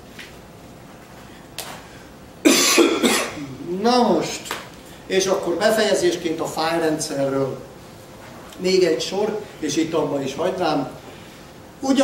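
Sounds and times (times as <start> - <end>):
man coughing: 2.4 - 3.6.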